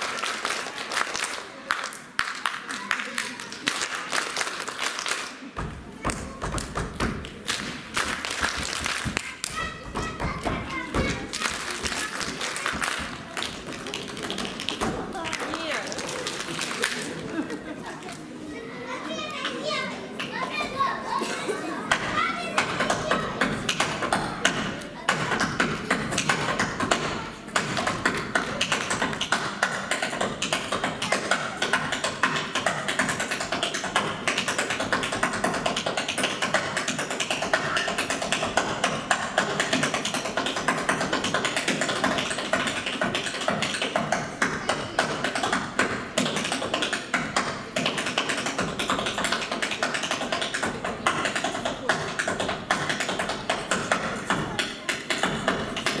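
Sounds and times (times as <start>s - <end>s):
tap shoes on wooden stage: 5.6s - 16.8s, 21.9s - 56.0s.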